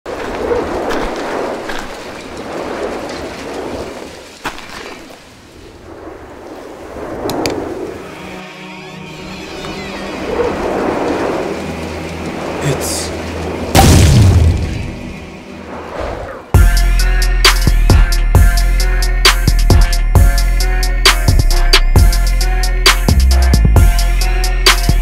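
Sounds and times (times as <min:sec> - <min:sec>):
rumbles and whooshes: 0:00.1 - 0:08.1, 0:09.8 - 0:16.6.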